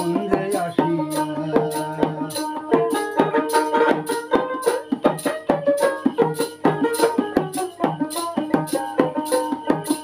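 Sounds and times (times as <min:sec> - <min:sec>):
hand drum strokes: 0:00.0 - 0:10.0
plucked lute melody: 0:00.0 - 0:10.0
rattle keeping a steady beat: 0:00.0 - 0:10.0.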